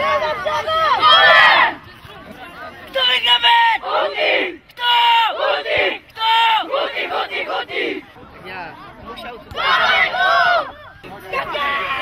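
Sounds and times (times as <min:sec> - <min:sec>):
boys shouting team cheer: 0:00.0 - 0:01.8, 0:02.9 - 0:08.0, 0:09.6 - 0:12.0.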